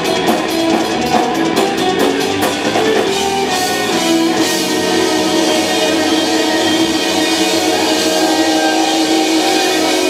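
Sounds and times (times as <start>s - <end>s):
metal band playing loud: 0.0s - 10.0s.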